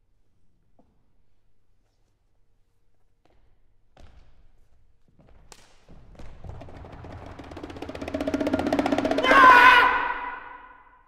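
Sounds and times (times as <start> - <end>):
percussion strokes: 6.4 - 11.0.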